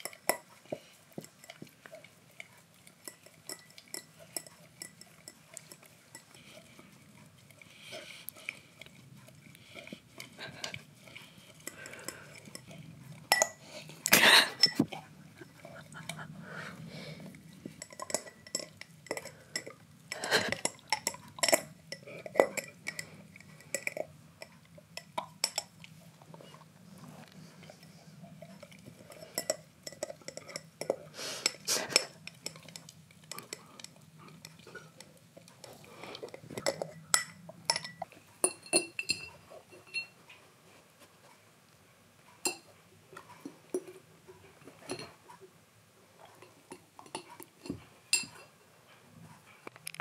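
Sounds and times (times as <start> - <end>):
dog licking and gnawing a jar: 0.0 - 16.3, 17.2 - 41.3, 42.4 - 45.5, 46.2 - 48.6
teeth clinking on glass: 3.0 - 6.4, 11.6 - 14.9, 17.8 - 25.7, 29.1 - 35.1, 36.2 - 40.2.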